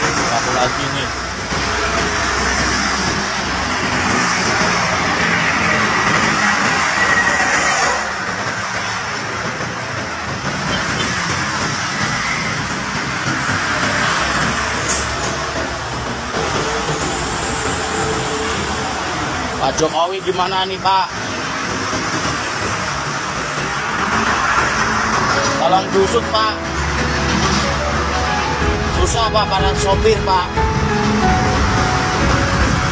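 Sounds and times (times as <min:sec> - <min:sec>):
highway traffic rushing: 0:00.0 - 0:32.9.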